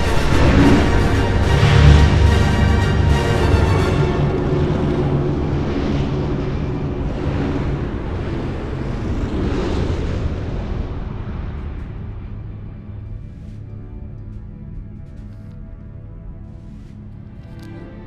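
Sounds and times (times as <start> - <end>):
bomber engines droning in flight: 0.0 - 18.0.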